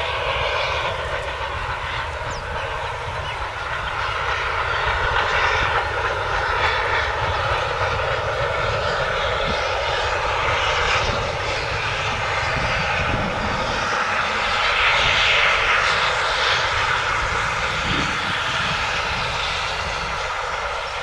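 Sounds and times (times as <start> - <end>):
distant train engine drone: 0.0 - 21.0.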